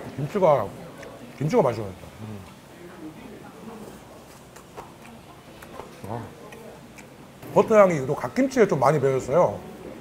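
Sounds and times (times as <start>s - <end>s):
man chewing food: 3.8s - 7.2s
wet mouth clicks: 4.2s - 7.2s.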